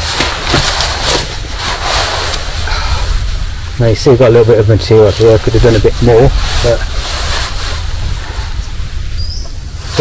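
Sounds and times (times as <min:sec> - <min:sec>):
hammock fabric rustling: 0:00.0 - 0:10.0
wind rumble on microphone: 0:00.0 - 0:10.0.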